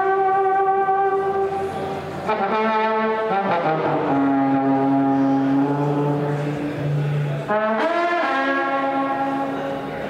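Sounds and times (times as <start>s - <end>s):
blues band holding long note: 0.0s - 10.0s.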